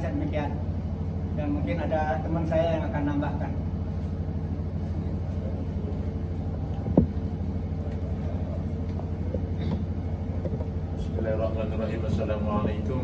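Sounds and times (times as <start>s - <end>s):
engine rumble with flutter: 0.0s - 13.0s
microphone handling knock: 6.9s - 7.2s.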